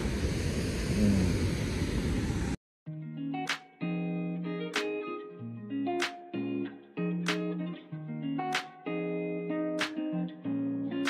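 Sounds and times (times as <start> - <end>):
brief low hum: 0.0 - 2.6.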